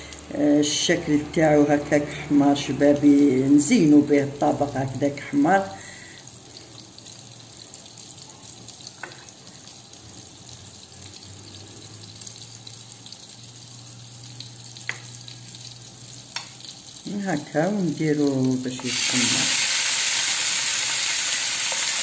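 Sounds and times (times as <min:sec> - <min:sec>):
butter sizzling in a frying pan: 0:00.0 - 0:22.0.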